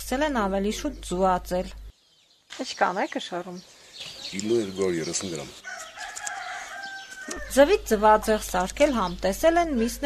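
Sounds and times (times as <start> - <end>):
rooster crowing: 5.6 - 7.7.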